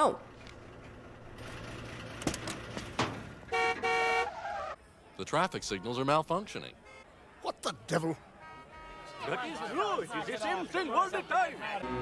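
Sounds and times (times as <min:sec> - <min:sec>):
city traffic hum: 0:00.0 - 0:12.0
car horn honking: 0:03.5 - 0:04.4, 0:06.7 - 0:07.2, 0:08.3 - 0:09.8, 0:11.8 - 0:12.0.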